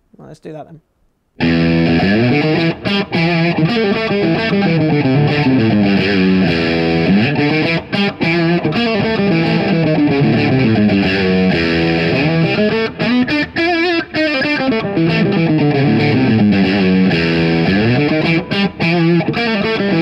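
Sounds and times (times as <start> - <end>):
overdriven electric guitar: 1.4 - 20.0.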